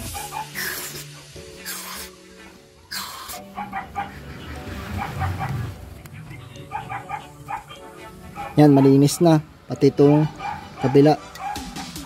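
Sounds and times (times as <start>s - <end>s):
aerosol spray hissing: 0.0s - 2.2s, 2.9s - 3.4s
background music: 0.0s - 12.0s.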